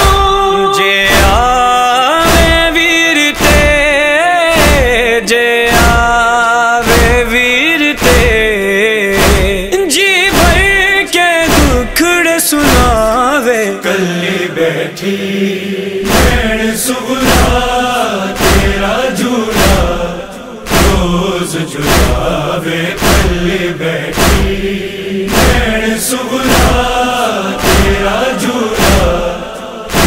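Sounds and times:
steady percussive beat: 0.0 - 5.1, 5.7 - 8.6, 9.2 - 12.0, 12.6 - 13.2, 16.1 - 30.0
chanted lament vocals: 0.0 - 30.0.

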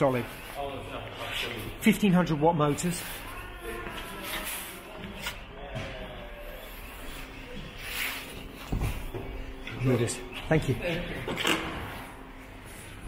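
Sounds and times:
distant people talking: 0.0 - 12.3.

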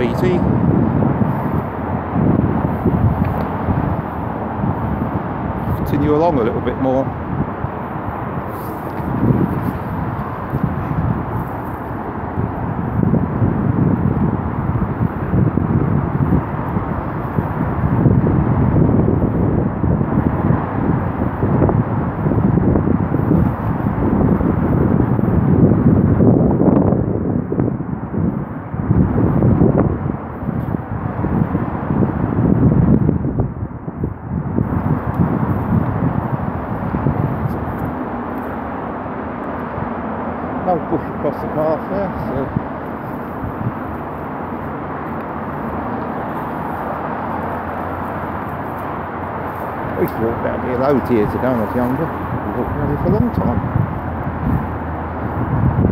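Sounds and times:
wind buffeting microphone: 0.0 - 55.9.

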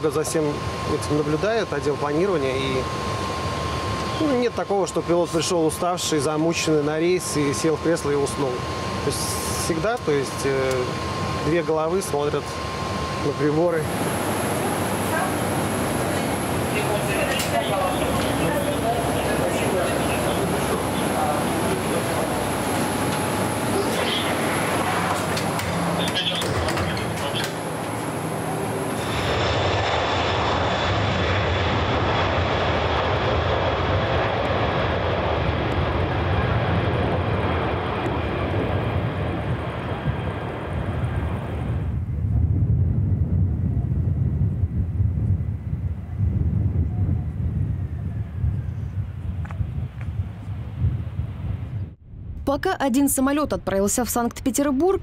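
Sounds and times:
jet engine whine: 0.0 - 55.0
low rumble of landing airliner: 0.0 - 55.0
wind gusting on microphone: 7.7 - 55.0.

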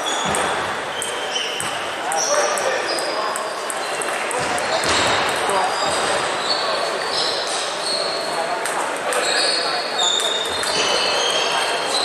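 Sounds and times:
shoes squeaking on floor: 0.0 - 8.4, 9.1 - 12.0
background chatter: 0.0 - 12.0
table tennis balls clicking: 0.2 - 6.4, 8.1 - 12.0.

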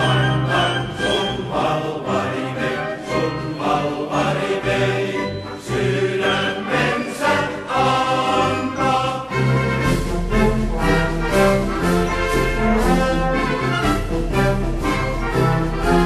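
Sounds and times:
choir singing a marching song: 0.0 - 16.0
steady low accompaniment: 0.0 - 16.0.

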